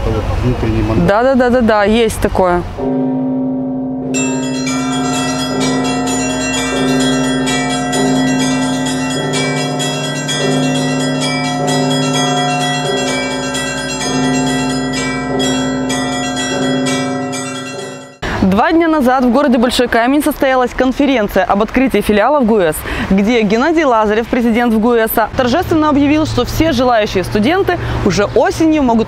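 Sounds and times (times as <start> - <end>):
church bells ringing: 2.8 - 19.2.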